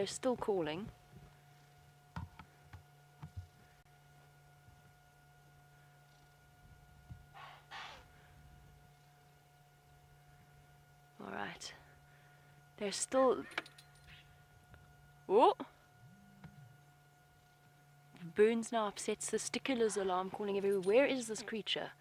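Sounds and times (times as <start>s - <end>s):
faint steady hum: 0.0s - 22.0s
impala alarm snorts: 7.3s - 8.1s.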